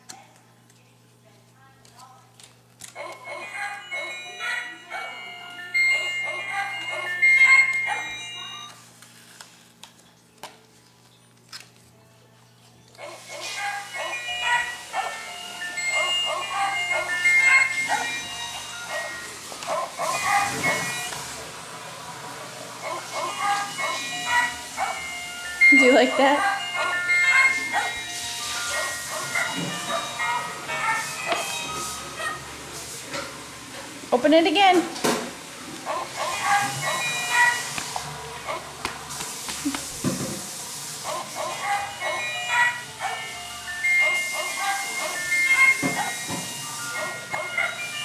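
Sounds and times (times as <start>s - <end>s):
electronic greeting card melody: 3.0s - 8.9s, 13.2s - 22.0s, 22.7s - 32.7s, 36.1s - 38.4s, 41.4s - 48.0s.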